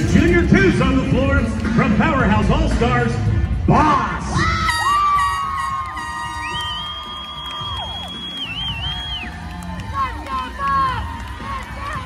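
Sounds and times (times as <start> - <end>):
spectators cheering: 4.4 - 12.0.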